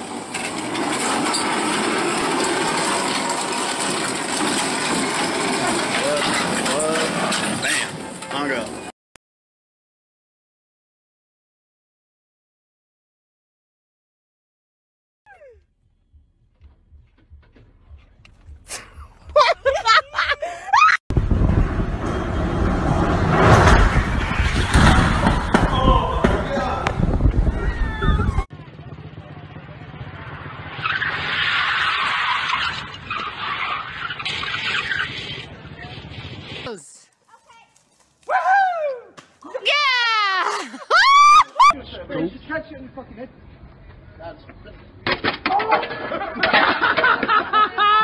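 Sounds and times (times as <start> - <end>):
bike crash: 0.0 - 8.5, 22.0 - 26.7, 45.0 - 47.4
sharp knocks and clatter: 0.3 - 7.6, 45.0 - 47.3
person's raised voice: 18.7 - 20.8.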